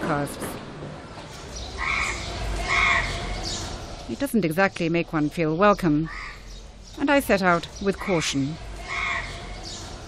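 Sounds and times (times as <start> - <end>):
crow cawing: 1.8 - 3.2, 6.1 - 6.5, 8.8 - 9.5.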